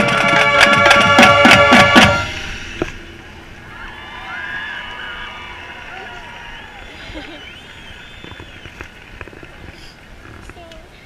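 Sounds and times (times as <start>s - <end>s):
distant crowd murmur: 2.9s - 11.0s.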